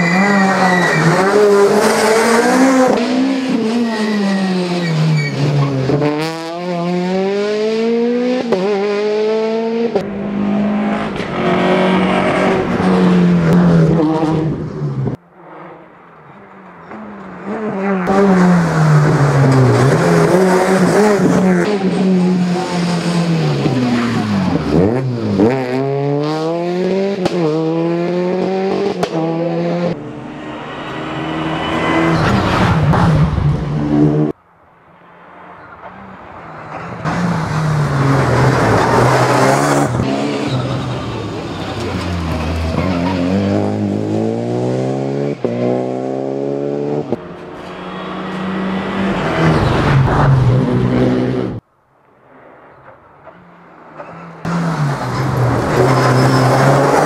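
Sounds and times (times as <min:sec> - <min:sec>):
rally car engine revving: 0:00.0 - 0:15.9, 0:16.8 - 0:34.4, 0:36.7 - 0:51.6, 0:54.0 - 0:57.0.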